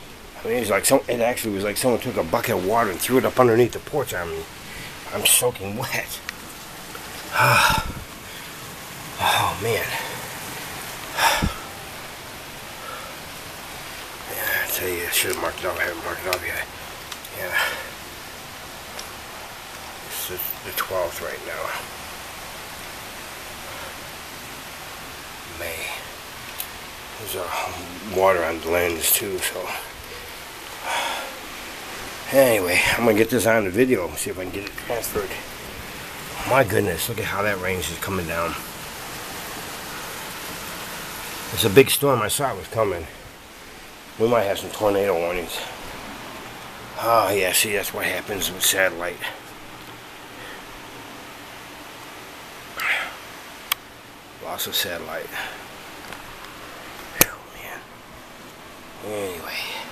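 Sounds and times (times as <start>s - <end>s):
heavy rain pouring: 0.0s - 59.9s
steady background hiss: 0.0s - 59.9s
man's sharp breath: 11.1s - 11.7s.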